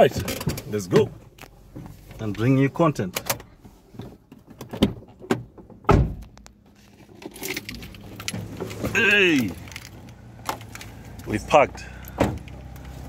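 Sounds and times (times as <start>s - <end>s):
heavy thump: 5.9s - 6.3s
low engine hum: 7.6s - 13.0s
clicks and light rattles: 9.4s - 11.4s.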